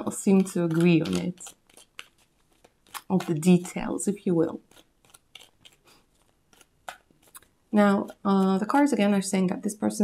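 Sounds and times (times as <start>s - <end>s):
cards snapping and clicking: 0.3s - 3.6s, 4.7s - 7.5s.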